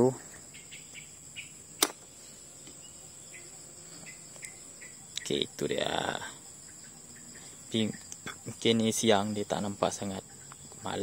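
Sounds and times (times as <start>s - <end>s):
crickets chirring: 0.0s - 11.0s
sharp click: 1.8s - 2.8s.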